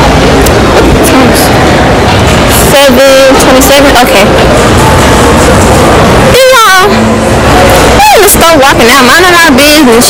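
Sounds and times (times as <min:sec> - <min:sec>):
loud steady background noise: 0:00.0 - 0:10.0
woman talking animatedly: 0:01.0 - 0:01.5, 0:02.6 - 0:04.3, 0:06.3 - 0:07.0, 0:08.0 - 0:10.0.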